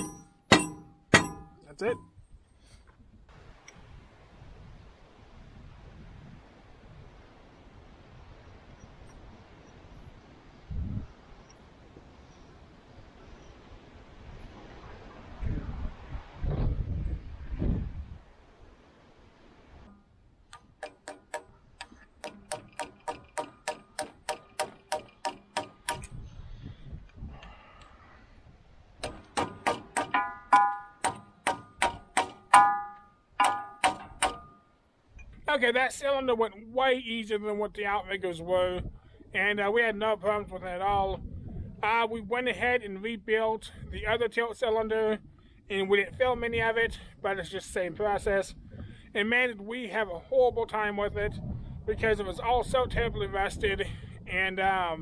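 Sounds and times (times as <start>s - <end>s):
hammer striking steel bar: 0.0s - 2.1s, 20.8s - 26.2s, 29.0s - 34.7s
handling knocks and thumps: 0.0s - 2.1s, 29.0s - 34.6s.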